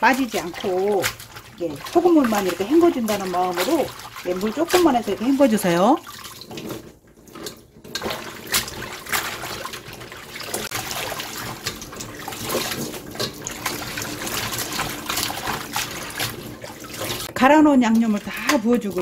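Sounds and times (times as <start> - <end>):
short water splashes: 0.0 - 19.0
water sloshing in metal bowl: 0.0 - 19.0.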